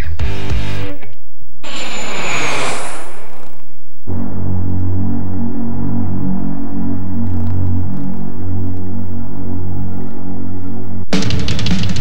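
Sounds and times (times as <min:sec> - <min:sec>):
high whine falling in pitch: 0:01.6 - 0:11.1.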